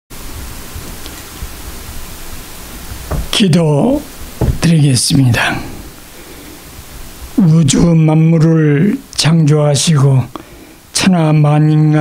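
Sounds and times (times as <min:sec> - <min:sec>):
steady background hiss: 0:00.1 - 0:12.0.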